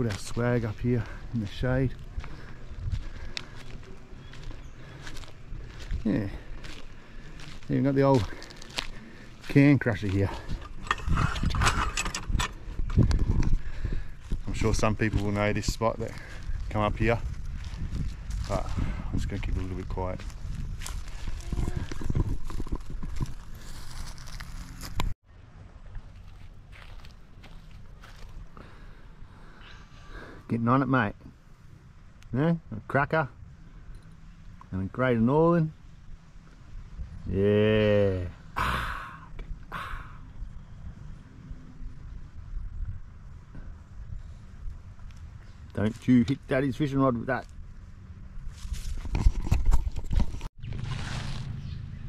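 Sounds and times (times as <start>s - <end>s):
footsteps on dry leaf litter: 0.0s - 10.6s, 14.2s - 25.2s, 26.0s - 28.5s, 50.6s - 51.9s
outdoor background: 0.0s - 52.0s
wind on microphone: 10.3s - 25.1s.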